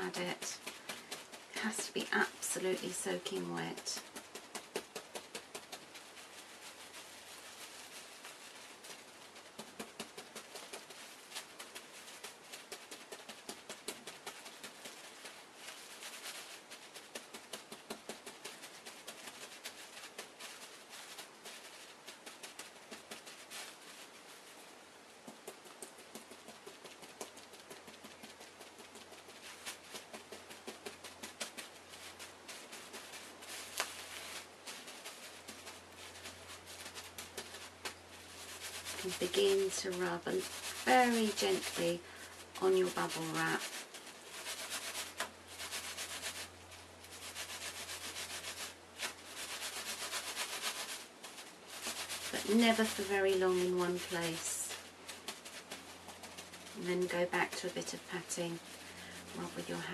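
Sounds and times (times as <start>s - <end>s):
soft wet pats and squelches: 0.0s - 59.9s.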